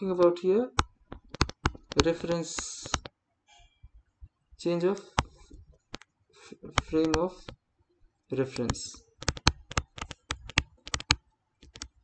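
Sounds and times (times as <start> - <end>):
stylus tapping on writing surface: 0.8 - 3.1, 9.2 - 11.2.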